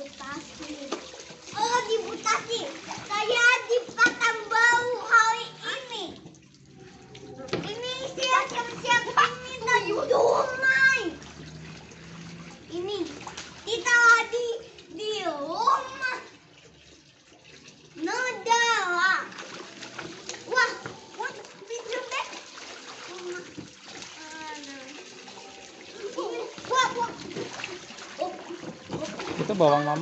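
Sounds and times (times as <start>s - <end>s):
child's voice: 0.0s - 6.2s, 7.3s - 11.2s, 12.7s - 16.4s, 18.0s - 19.3s, 20.5s - 27.4s, 28.2s - 29.2s
garden hose running: 0.0s - 30.0s
water splashing in paddling pool: 0.0s - 30.0s.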